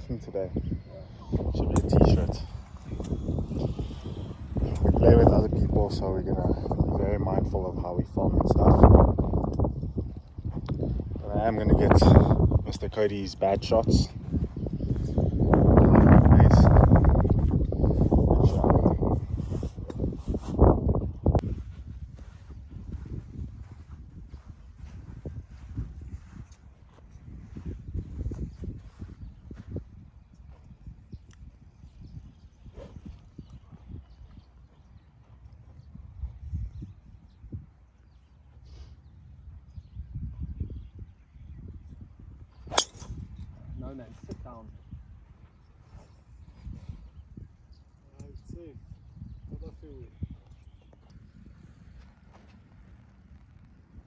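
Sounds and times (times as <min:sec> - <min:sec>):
wind rumbling on microphone: 0:00.0 - 0:54.0
golf driver striking ball: 0:42.7 - 0:43.2.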